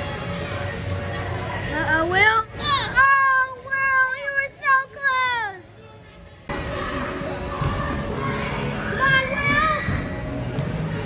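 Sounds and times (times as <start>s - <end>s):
hubbub of indoor hall: 0.0s - 11.0s.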